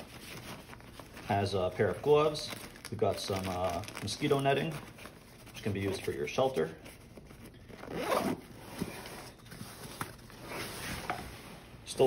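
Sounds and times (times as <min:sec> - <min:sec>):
backpack fabric rustling: 0:00.0 - 0:11.9
zipper pulls: 0:07.7 - 0:09.3.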